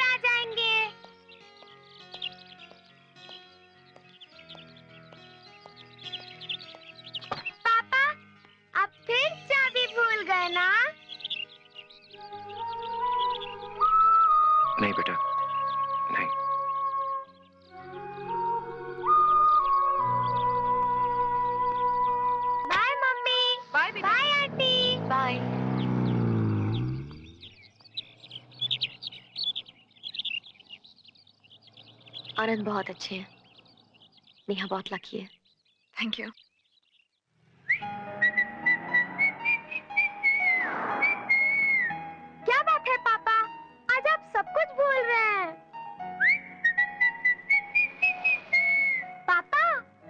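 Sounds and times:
birds chirping: 0.0 - 50.0
car engine humming: 23.4 - 34.4
person whistling a tune: 38.2 - 41.9, 46.2 - 49.2.

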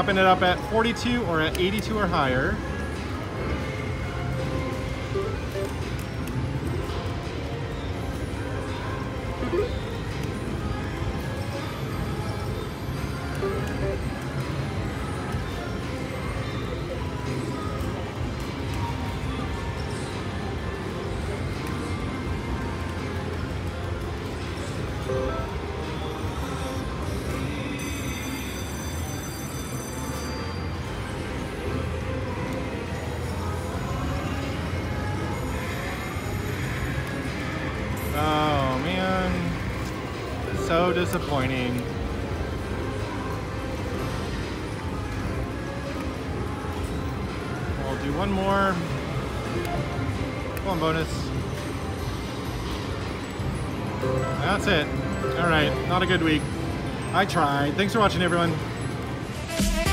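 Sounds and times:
slot machine reel sounds and music: 0.0 - 59.9
high ringing chime: 27.7 - 30.9.

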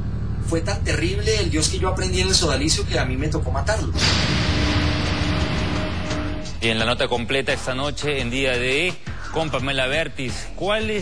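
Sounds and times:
faint steady drone: 0.0 - 6.6
rush of noise: 0.6 - 6.6.

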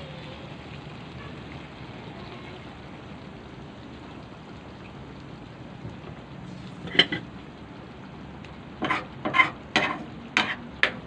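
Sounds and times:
metal spoon scraping a pan: 6.6 - 7.3, 8.8 - 11.0.

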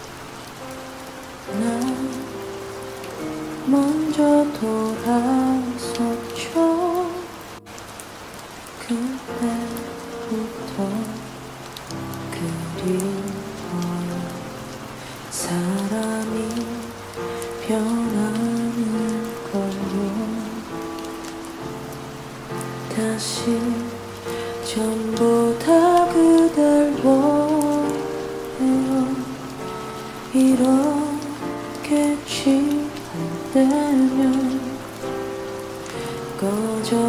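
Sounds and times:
slow soft ballad: 0.0 - 37.0
steady rain: 0.0 - 37.0.

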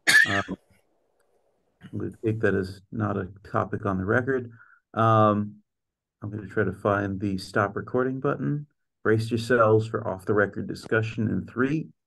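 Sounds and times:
man clearing his throat: 0.0 - 0.6
man speaking: 0.2 - 0.6, 1.8 - 5.6, 6.2 - 12.0.

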